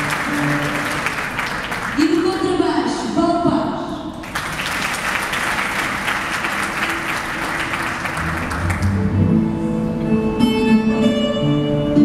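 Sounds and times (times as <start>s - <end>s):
audience applauding: 0.0s - 2.6s, 4.2s - 9.3s
double bass notes: 8.2s - 12.0s.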